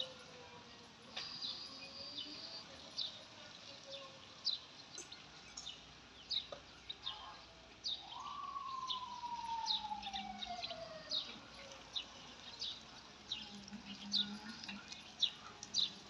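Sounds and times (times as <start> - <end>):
small birds chirping: 0.0 - 16.0
whine gliding down in pitch: 8.2 - 11.4.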